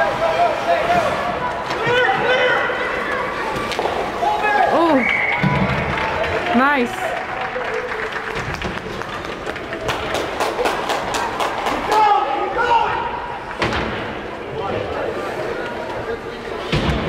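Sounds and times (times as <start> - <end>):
voices echoing in arena: 0.0 - 17.0.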